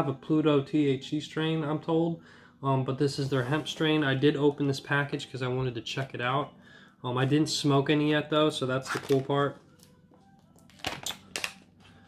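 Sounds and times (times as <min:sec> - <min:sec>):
faint background music: 0:00.0 - 0:12.0
package crinkling and clicking: 0:08.9 - 0:10.0, 0:10.6 - 0:11.7.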